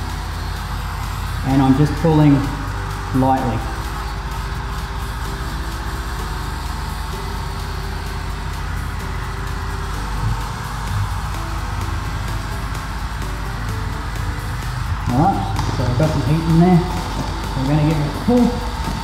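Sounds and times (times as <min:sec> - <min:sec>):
background music: 0:00.0 - 0:19.0
heat gun blowing hum: 0:00.0 - 0:19.0.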